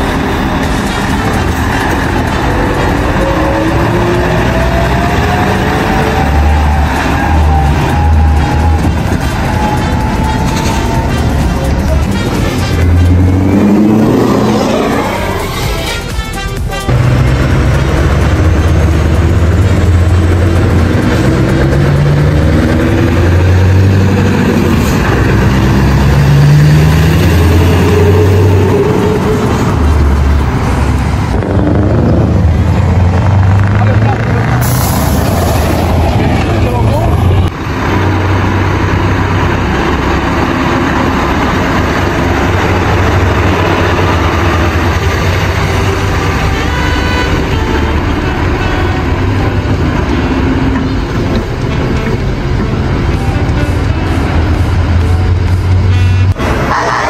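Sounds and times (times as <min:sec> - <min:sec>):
truck diesel engines driving past: 0:00.0 - 0:57.0.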